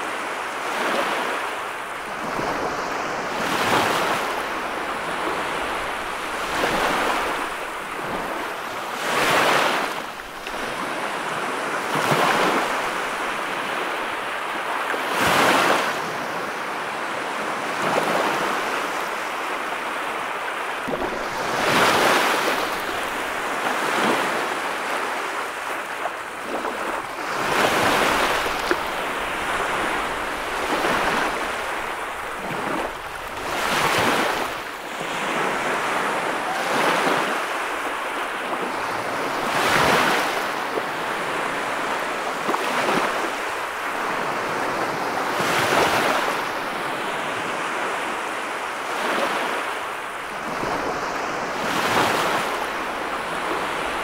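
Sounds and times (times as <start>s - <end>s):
ocean surf breaking: 0.0s - 54.0s.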